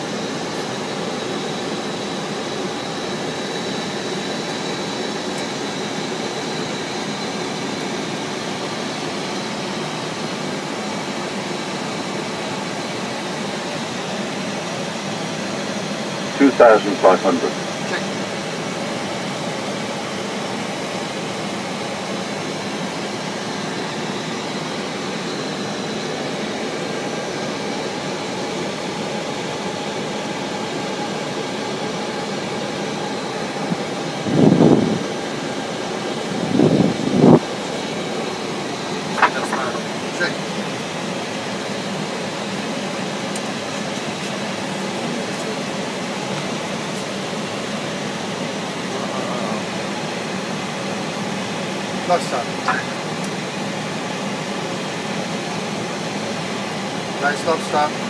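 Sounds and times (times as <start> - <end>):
air-conditioning fans: 2.6 - 58.0.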